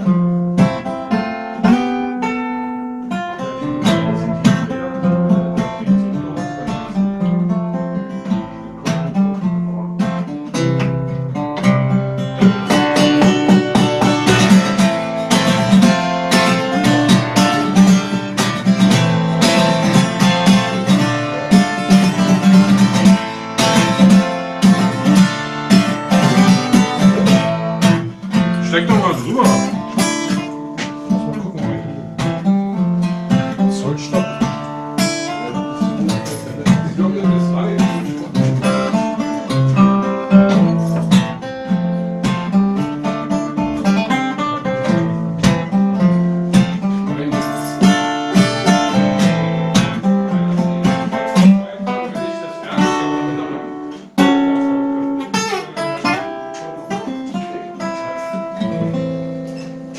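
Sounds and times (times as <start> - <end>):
acoustic guitar playing: 0.0 - 59.9.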